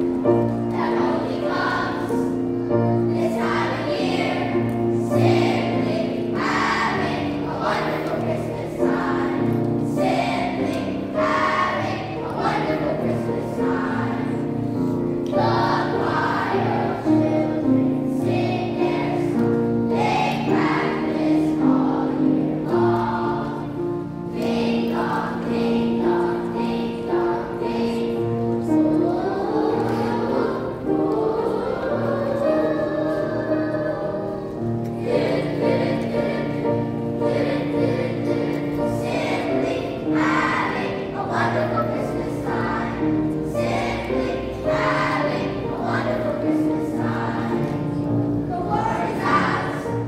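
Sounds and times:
children's choir singing: 0.0 - 50.0
upright piano: 0.0 - 50.0.

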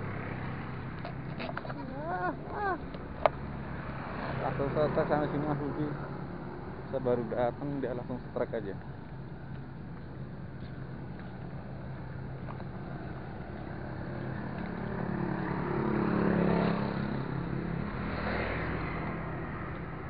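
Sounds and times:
vehicle passing close by: 0.0 - 7.3, 12.7 - 20.0
low engine hum: 0.0 - 20.0.

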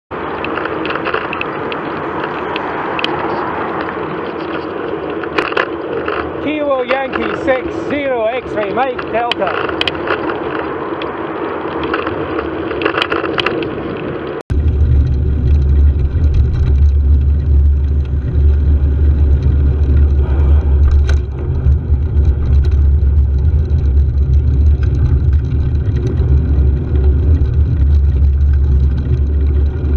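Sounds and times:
car traffic: 0.1 - 29.9
wind and road noise: 0.1 - 29.9.

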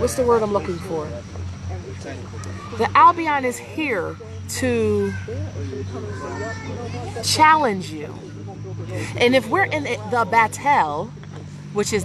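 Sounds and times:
background chatter: 0.0 - 12.0
steady low hum: 0.0 - 12.0
children's voices: 2.4 - 8.2.

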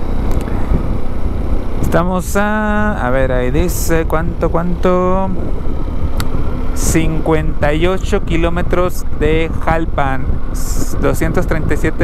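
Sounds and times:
motorcycle riding: 0.0 - 12.0.

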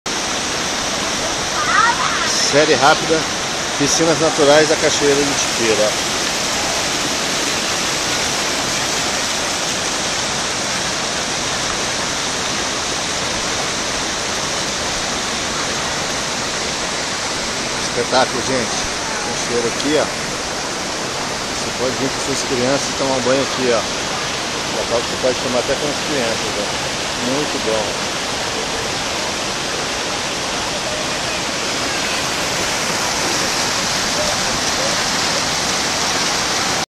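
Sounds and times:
waterfall rushing into pool: 0.0 - 36.9.

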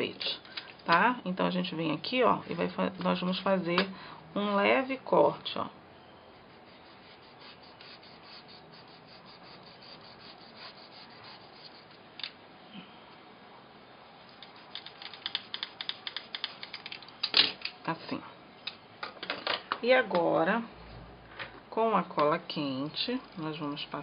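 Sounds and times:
craft knife cutting foam: 6.5 - 11.9.

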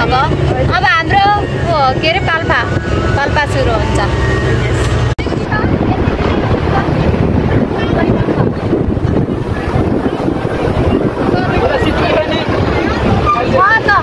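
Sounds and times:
bus rumble and road noise: 0.0 - 14.0
faint passengers' voices: 0.0 - 14.0
wind buffeting microphone: 0.0 - 14.0.

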